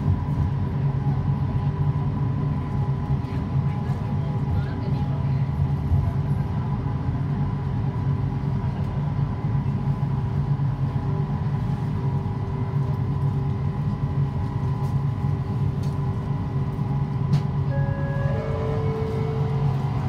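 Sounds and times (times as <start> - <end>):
train running rumble: 0.0 - 20.0.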